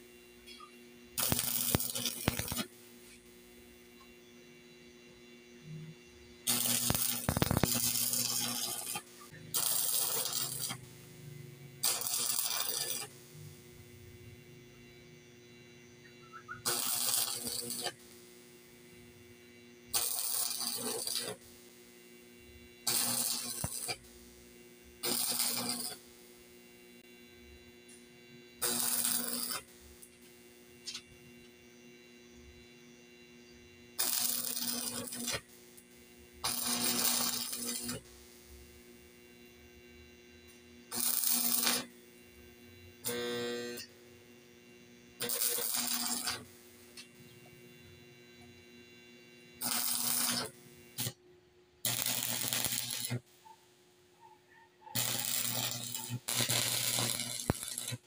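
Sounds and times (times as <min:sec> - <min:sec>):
arc welding crackle: 0:00.0 - 0:05.0, 0:05.6 - 0:51.2, 0:51.8 - 0:54.2, 0:54.8 - 0:58.0
steady low hum: 0:00.0 - 0:19.9.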